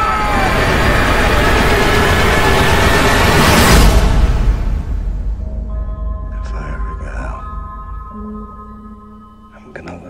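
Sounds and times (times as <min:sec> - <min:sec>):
rushing roar riser: 0:00.0 - 0:05.4.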